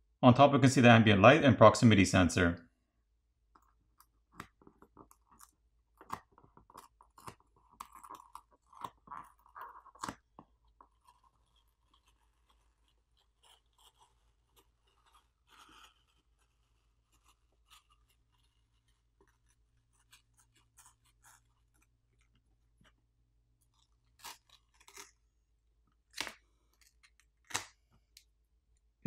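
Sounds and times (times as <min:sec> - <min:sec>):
adhesive film crackling as peeled: 0:04.0 - 0:22.9, 0:23.6 - 0:25.2, 0:25.9 - 0:27.8.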